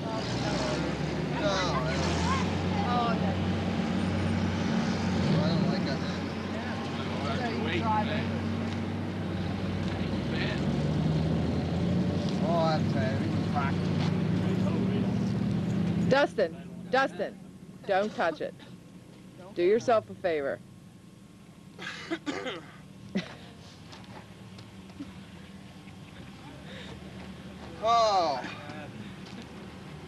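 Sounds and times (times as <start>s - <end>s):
voices: 0.0s - 10.9s, 12.2s - 20.8s, 24.4s - 30.0s
low engine hum: 0.0s - 30.0s.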